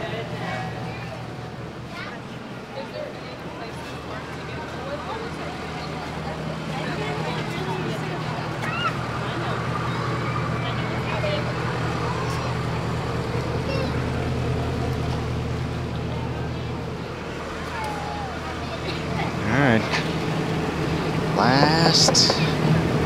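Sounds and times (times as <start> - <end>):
boat engine idling: 0.0 - 23.0
faint chatter of people: 0.0 - 23.0.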